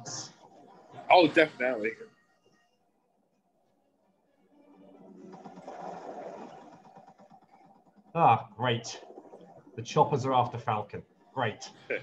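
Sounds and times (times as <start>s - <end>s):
faint helicopter rotor chop: 3.5s - 12.0s.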